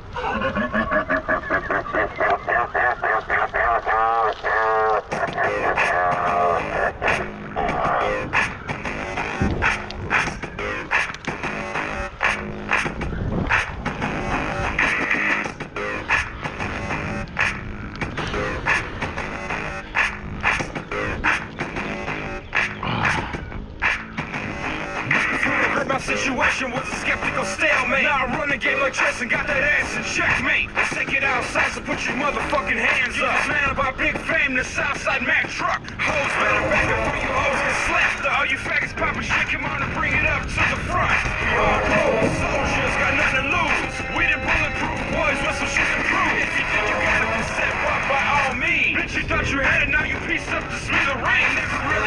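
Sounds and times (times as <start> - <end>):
short laugh: 0.2 - 4.6
wavering pitched intro: 40.4 - 49.5.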